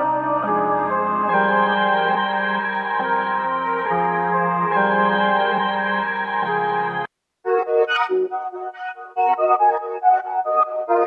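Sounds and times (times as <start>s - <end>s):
dark keyboard chords loop: 0.0s - 11.0s.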